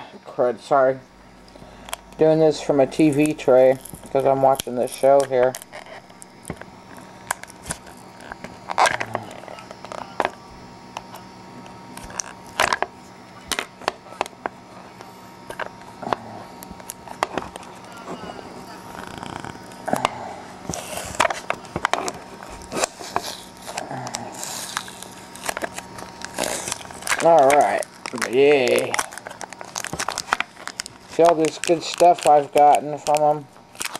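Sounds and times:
plastic crinkling: 1.4s - 33.9s
hard plastic packaging cracking: 2.9s - 33.9s
faint television: 17.7s - 20.3s.

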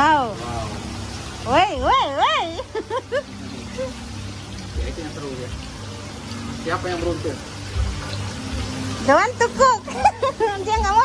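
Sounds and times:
water sloshing and bubbling: 0.0s - 11.0s.

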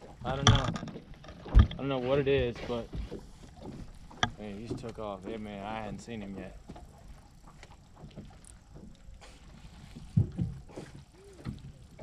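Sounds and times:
water lapping around boat: 0.0s - 12.0s
wind: 0.0s - 12.0s.

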